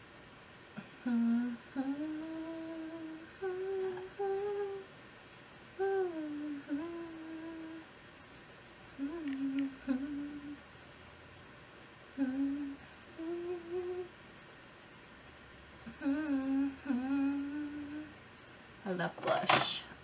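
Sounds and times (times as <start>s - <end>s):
woman humming: 0.8s - 4.9s, 5.8s - 8.0s, 8.9s - 10.6s, 12.1s - 14.2s, 15.8s - 18.2s.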